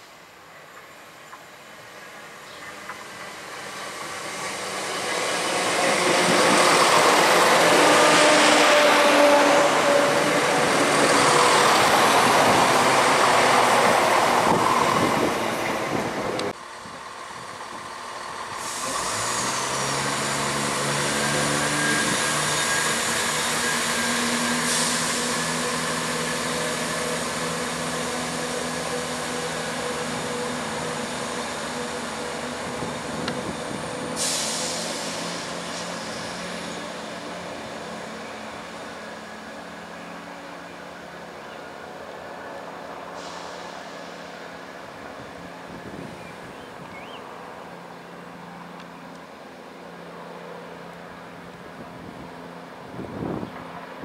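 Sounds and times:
train diesel engines humming: 0:00.0 - 0:54.0
train wheel and rail noise: 0:00.0 - 0:54.0.

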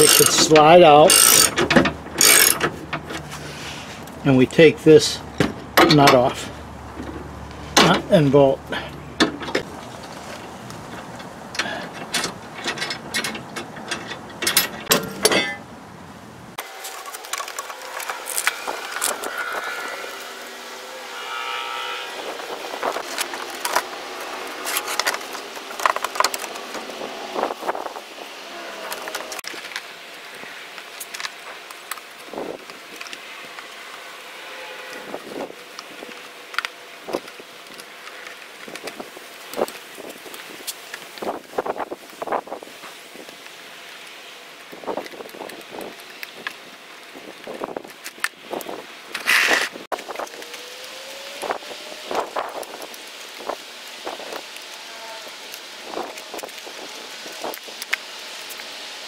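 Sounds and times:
socket wrench clicking: 0:01.1 - 0:01.6, 0:02.2 - 0:02.6.

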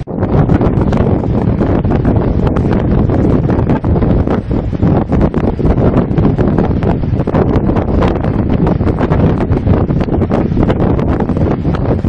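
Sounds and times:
water rushing down spillway: 0:00.0 - 0:12.0
wind buffeting microphone: 0:00.0 - 0:12.0.

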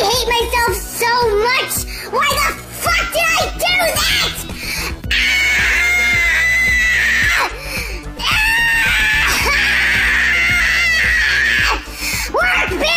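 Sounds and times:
background music: 0:00.0 - 0:12.9
person screaming: 0:05.1 - 0:07.6, 0:08.2 - 0:12.9.

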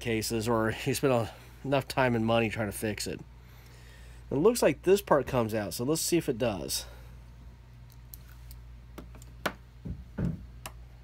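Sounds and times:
steady low hum: 0:00.0 - 0:11.0
dull knocks: 0:09.4 - 0:10.5.

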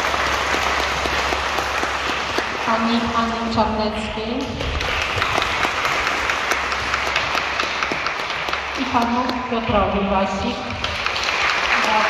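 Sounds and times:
audience applauding: 0:00.0 - 0:03.5, 0:04.4 - 0:09.4, 0:10.7 - 0:12.0.

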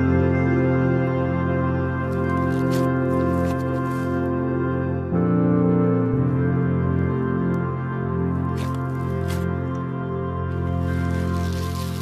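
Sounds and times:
background music: 0:00.0 - 0:12.0
slime squishing: 0:08.5 - 0:09.5, 0:10.6 - 0:12.0.

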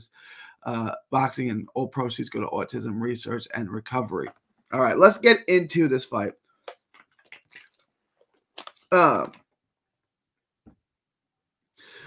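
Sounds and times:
person gulping water: 0:07.0 - 0:07.9.

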